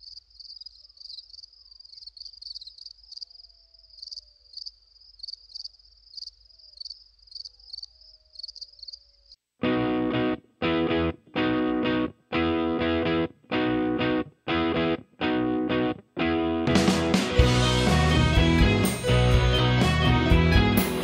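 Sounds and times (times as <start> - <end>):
crickets chirping: 0.0 - 9.4
distorted guitar chords: 9.6 - 21.0.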